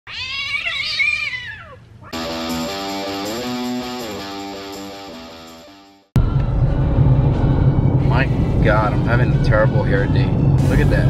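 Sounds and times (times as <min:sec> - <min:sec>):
cat yowling: 0:00.1 - 0:02.2.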